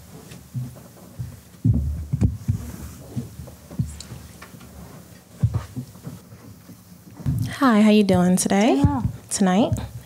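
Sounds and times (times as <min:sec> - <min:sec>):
faint room noise: 0:00.0 - 0:10.0
dull low thumps: 0:07.2 - 0:10.0.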